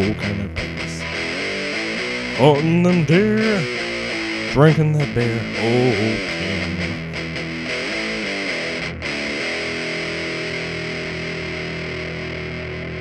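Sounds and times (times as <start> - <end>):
guitar chord ringing: 0.0 - 13.0
guitar playing: 0.0 - 13.0.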